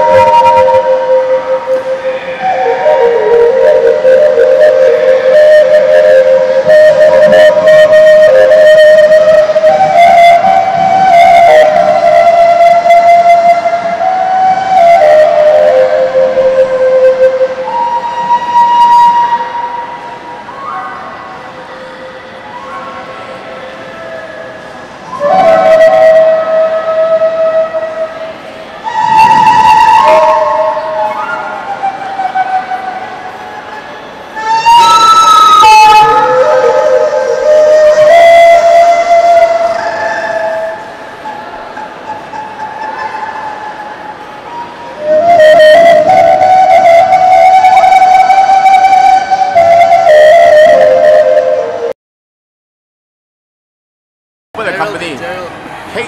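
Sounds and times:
flute-like slow melody: 0:00.0 - 0:52.0.

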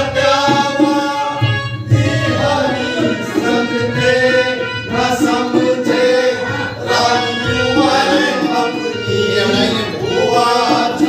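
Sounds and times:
harmonium: 0:00.0 - 0:11.0
voices singing: 0:00.0 - 0:11.0.

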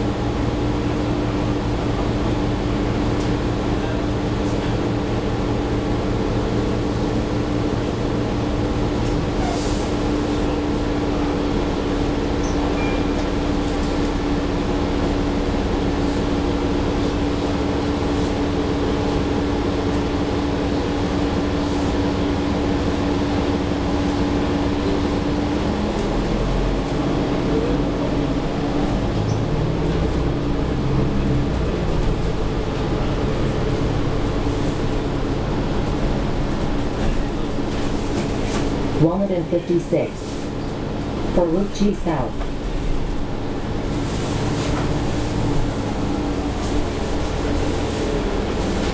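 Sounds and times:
bus engine hum: 0:00.0 - 0:48.9.

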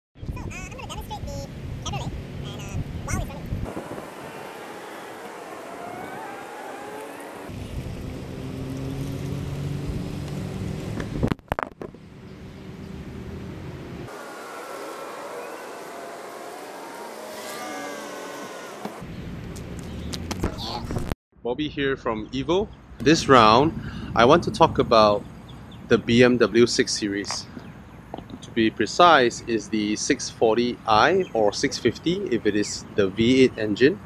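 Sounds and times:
car engine revving: 0:03.6 - 0:11.4, 0:12.1 - 0:20.4.

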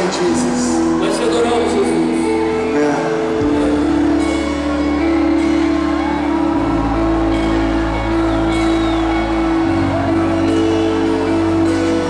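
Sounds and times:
band playing sustained chords: 0:00.0 - 0:12.0.

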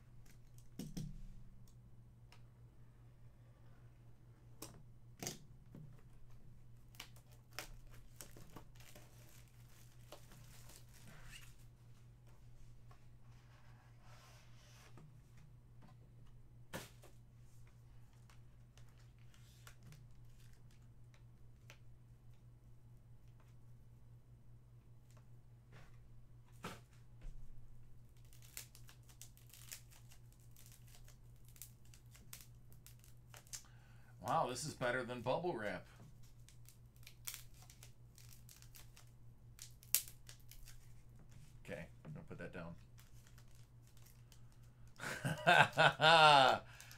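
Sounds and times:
bubble wrap popping: 0:06.8 - 0:11.5, 0:28.1 - 0:33.6, 0:36.2 - 0:41.1, 0:42.8 - 0:46.9.

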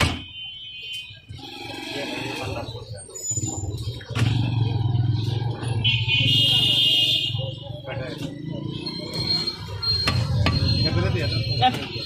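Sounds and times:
people talking: 0:01.6 - 0:04.4, 0:06.2 - 0:09.5, 0:10.3 - 0:12.0.

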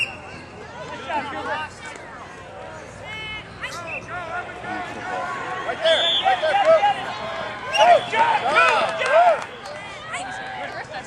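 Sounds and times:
people shouting: 0:03.0 - 0:10.7.

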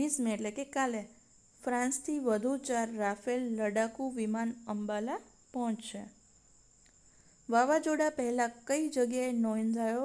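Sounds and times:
woman speaking: 0:00.0 - 0:06.2, 0:07.5 - 0:10.0
faint high-pitched whine: 0:00.0 - 0:10.0
small click: 0:06.8 - 0:07.0.

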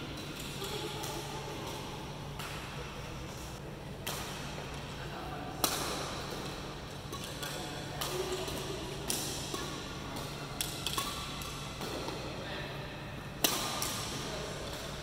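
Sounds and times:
rackets hitting shuttlecocks: 0:00.2 - 0:02.8, 0:04.0 - 0:04.8, 0:05.5 - 0:12.3, 0:13.4 - 0:15.0.

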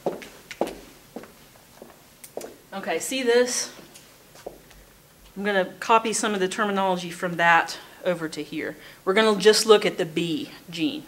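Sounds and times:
footsteps: 0:00.0 - 0:02.6, 0:03.7 - 0:05.4.

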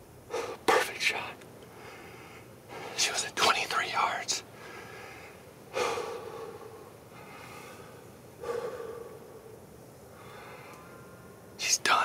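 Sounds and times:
man breathing heavily: 0:00.3 - 0:00.7, 0:01.7 - 0:03.1, 0:04.5 - 0:11.0.

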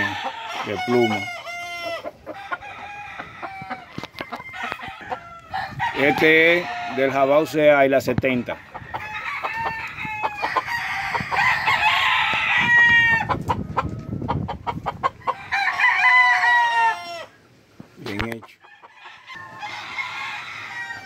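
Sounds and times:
roosters crowing: 0:00.0 - 0:17.5, 0:18.2 - 0:21.0.

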